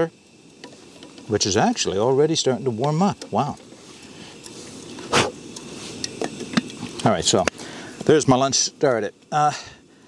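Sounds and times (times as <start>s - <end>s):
gas burner rushing: 0.0s - 10.0s.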